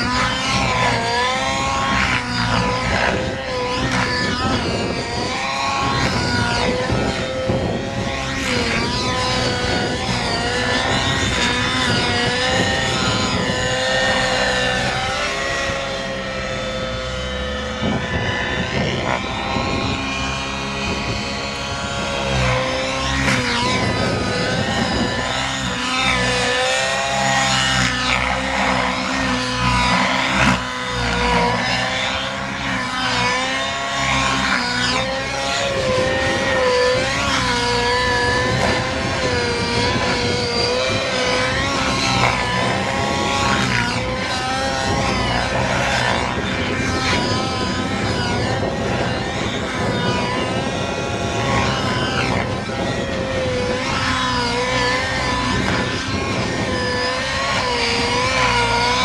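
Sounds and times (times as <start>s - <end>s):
model helicopter engine and rotor: 0.0s - 59.0s.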